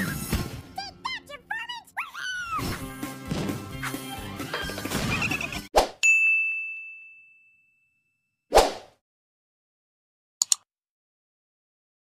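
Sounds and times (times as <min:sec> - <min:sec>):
bright bell ding: 0:06.0 - 0:08.2.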